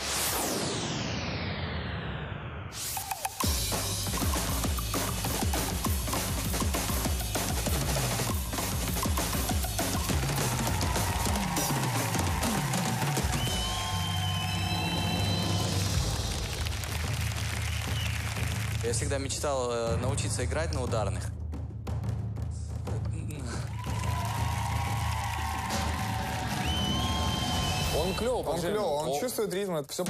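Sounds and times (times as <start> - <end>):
backing music: 2.8 - 30.0
fast drumming on drum kits: 3.4 - 14.2, 15.6 - 30.0.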